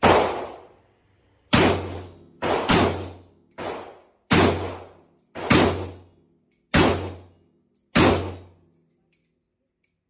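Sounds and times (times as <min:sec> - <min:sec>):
pistol shots echoing indoors: 0:00.0 - 0:00.8, 0:01.5 - 0:10.0.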